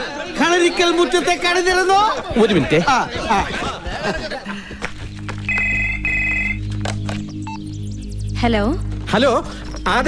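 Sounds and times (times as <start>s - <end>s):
telephone ringing: 5.5s - 6.6s.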